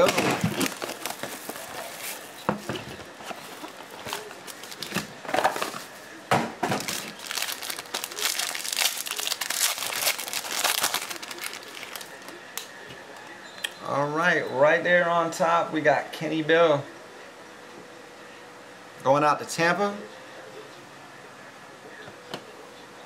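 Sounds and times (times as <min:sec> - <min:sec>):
foil card pack crinkling: 0:00.0 - 0:06.0, 0:06.7 - 0:12.4
foil pack tearing: 0:00.0 - 0:06.0, 0:06.8 - 0:12.3.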